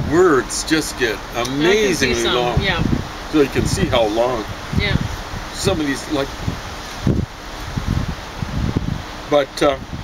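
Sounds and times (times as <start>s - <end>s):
wind rustling leaves: 0.0s - 10.0s
wind buffeting microphone: 1.6s - 10.0s.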